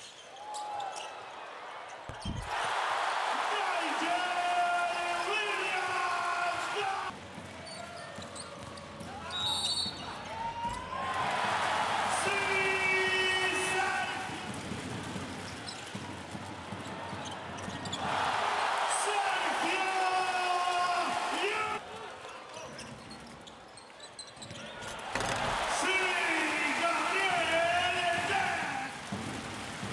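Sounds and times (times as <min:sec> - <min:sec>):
sneaker squeaks: 0:00.0 - 0:02.5, 0:07.6 - 0:10.9, 0:16.7 - 0:18.1, 0:22.2 - 0:25.4
arena crowd noise: 0:00.0 - 0:29.9.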